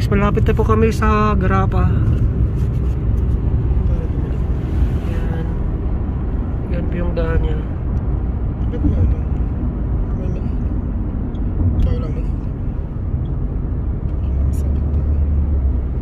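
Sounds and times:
car cabin road rumble: 0.0s - 16.0s.

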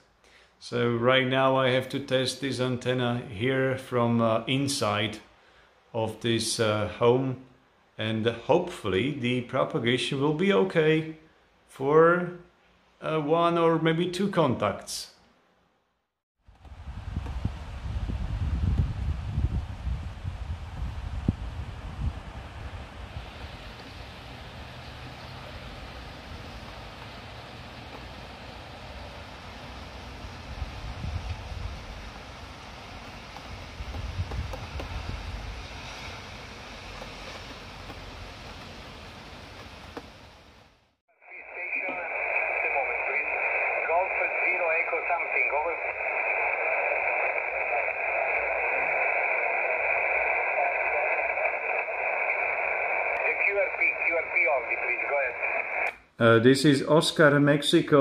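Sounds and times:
wind noise with low rumble: 16.5s - 24.0s, 30.3s - 32.3s, 33.0s - 36.2s
radio static with high whistle: 41.2s - 55.9s
weak voice over radio: 41.2s - 55.9s.

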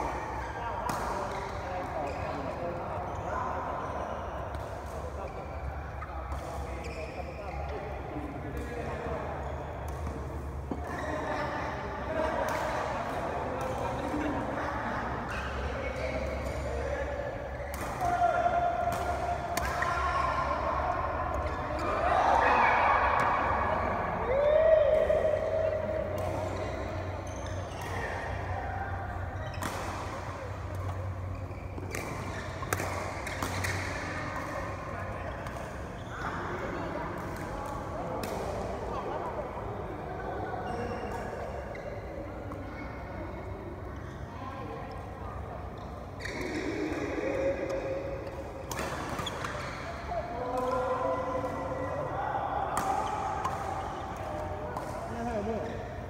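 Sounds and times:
players' voices: 0.0s - 56.0s
rackets hitting shuttlecock: 15.3s - 22.4s, 24.8s - 35.9s, 45.8s - 55.9s.

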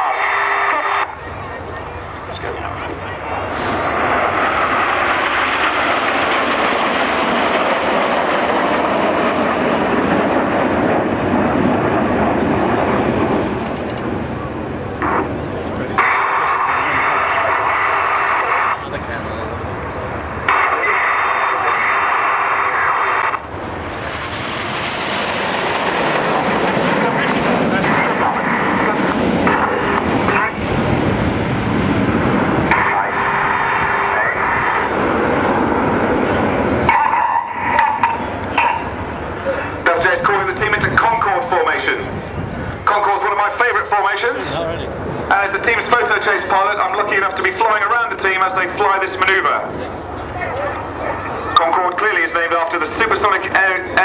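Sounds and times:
jet engines flying past overhead: 0.0s - 54.0s.

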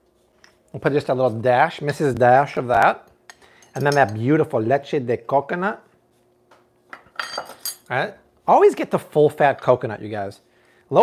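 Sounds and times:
metal kitchen items clinking: 7.0s - 7.9s.

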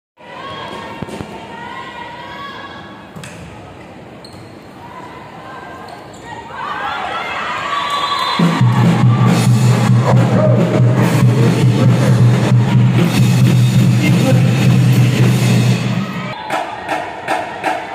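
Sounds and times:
crowd chatter and chanting: 0.2s - 4.1s, 8.4s - 17.9s
crowd cheering: 6.5s - 17.9s
pulsing arena music with bass: 8.4s - 17.9s.

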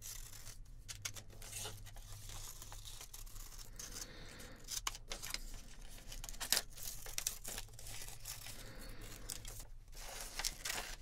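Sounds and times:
magazine paper rustling: 0.0s - 11.0s.

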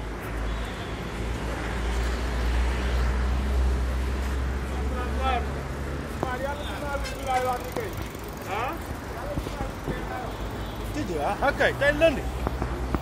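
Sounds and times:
street traffic rumble: 0.0s - 13.0s
indistinct voices talking: 4.7s - 13.0s.

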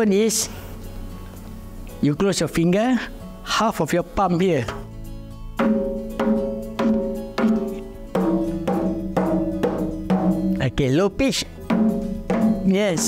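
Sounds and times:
hand frame drum strokes: 5.6s - 10.6s, 11.7s - 13.0s.

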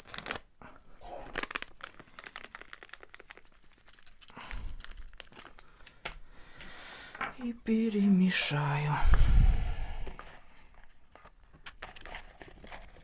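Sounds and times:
plastic packet crinkling: 0.0s - 6.2s, 10.2s - 13.0s.

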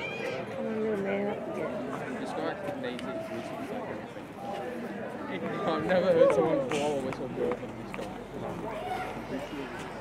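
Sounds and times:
indistinct people talking: 0.0s - 10.0s.

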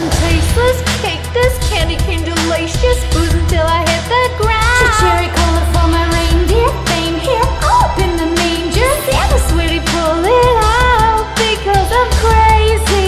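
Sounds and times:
deep bass: 0.0s - 13.0s
woman singing pop song: 0.0s - 13.0s
drum beat: 4.4s - 12.8s.

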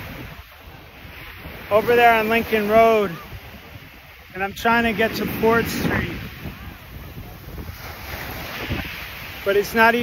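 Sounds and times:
surf washing onto shore: 0.0s - 10.0s
wind buffeting microphone: 0.0s - 10.0s.

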